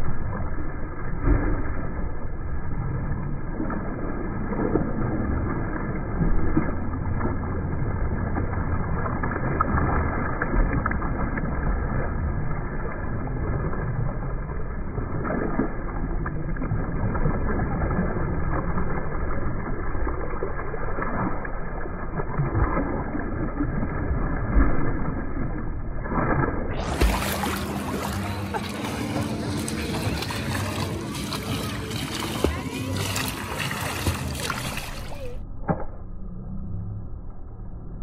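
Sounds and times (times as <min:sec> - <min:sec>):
water splashing from swimming strokes: 0:00.0 - 0:35.9
low noise of moving water: 0:00.0 - 0:38.0.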